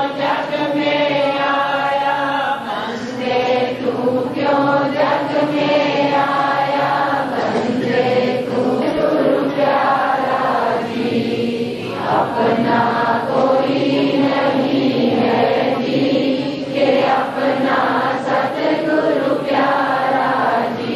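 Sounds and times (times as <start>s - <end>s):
congregation chanting a hymn: 0.0s - 20.9s.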